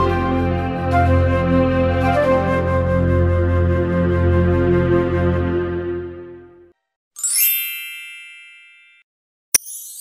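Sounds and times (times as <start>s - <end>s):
bright chime ringing: 7.2s - 9.0s.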